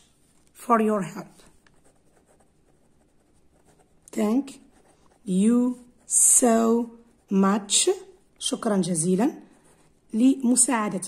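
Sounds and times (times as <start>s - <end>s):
ballpoint pen scratching on paper: 1.4s - 10.6s.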